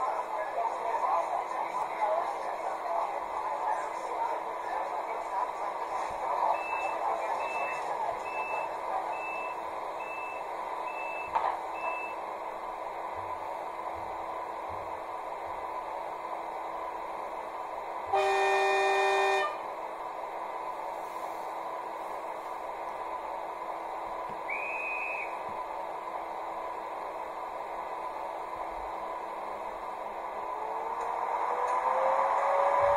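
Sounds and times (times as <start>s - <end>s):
train horn blast: 18.1s - 19.6s.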